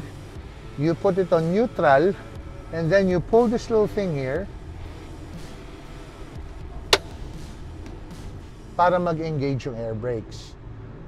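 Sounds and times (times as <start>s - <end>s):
parking valve knob click: 7.0s - 7.2s.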